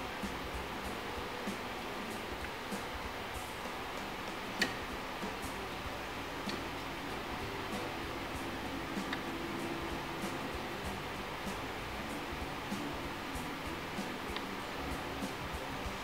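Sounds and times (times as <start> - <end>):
steady quiet hiss: 0.0 - 16.0
sharp click: 3.6 - 5.6.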